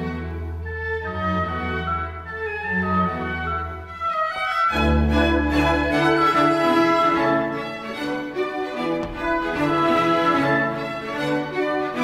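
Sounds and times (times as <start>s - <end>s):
chamber orchestra playing classical: 0.0s - 12.0s.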